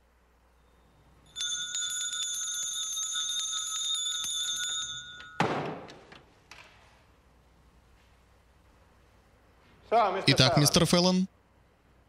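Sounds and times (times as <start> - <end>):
hand bell ringing: 1.2 - 5.5
loud thud: 5.4 - 5.9.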